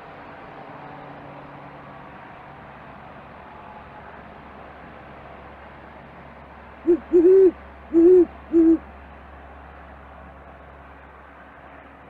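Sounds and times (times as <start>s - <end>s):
owl hooting: 6.9s - 8.8s.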